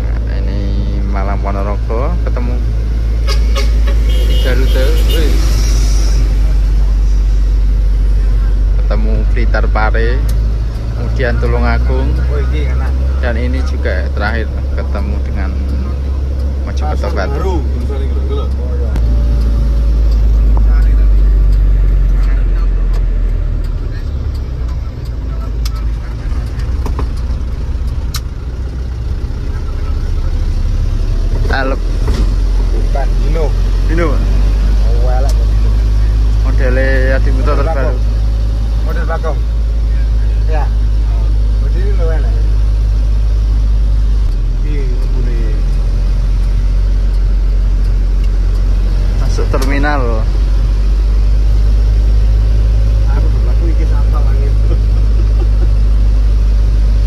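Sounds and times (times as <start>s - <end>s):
diesel engine rumble: 0.0s - 57.0s
road noise inside vehicle: 0.0s - 57.0s.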